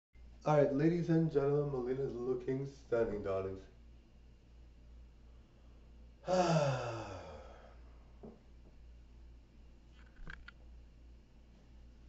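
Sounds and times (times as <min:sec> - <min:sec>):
person sighing: 0:06.2 - 0:07.8.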